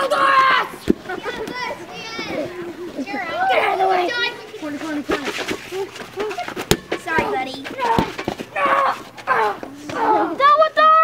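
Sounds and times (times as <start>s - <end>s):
children shouting: 0.0s - 4.4s, 6.2s - 11.0s.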